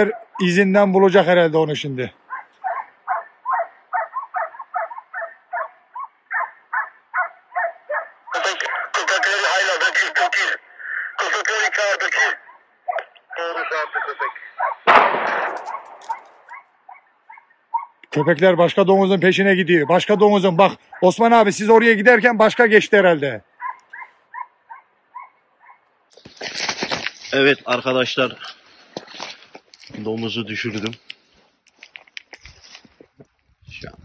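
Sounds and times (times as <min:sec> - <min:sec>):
hunting dogs baying: 0:00.0 - 0:00.6, 0:02.1 - 0:11.2, 0:12.1 - 0:18.3, 0:19.6 - 0:21.5, 0:23.4 - 0:25.9
gunshot with echo: 0:14.8 - 0:16.4.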